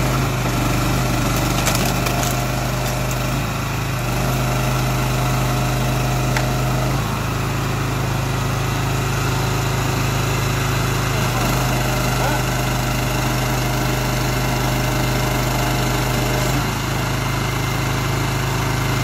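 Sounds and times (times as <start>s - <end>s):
petrol engine running: 0.0s - 19.0s.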